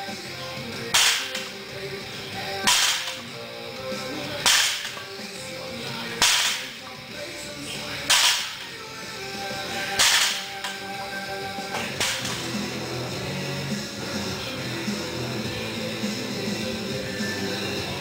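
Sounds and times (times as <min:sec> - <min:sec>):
background music: 0:00.0 - 0:18.0
weight plates striking floor: 0:00.9 - 0:01.5, 0:02.6 - 0:03.2, 0:04.4 - 0:05.1, 0:06.2 - 0:06.8, 0:08.1 - 0:08.7, 0:10.0 - 0:10.8, 0:11.8 - 0:12.5.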